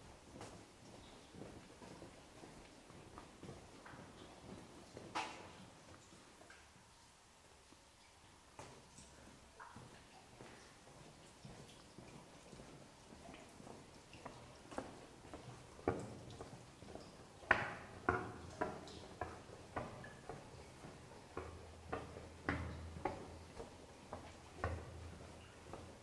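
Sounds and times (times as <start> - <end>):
echoing footsteps on pavement: 0.0 - 6.0, 8.6 - 26.0.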